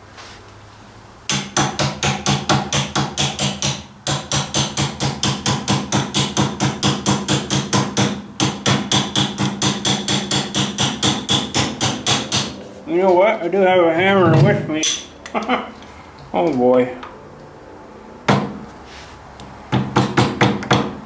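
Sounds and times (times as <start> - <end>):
ratchet wrench clicking: 9.6 - 12.0.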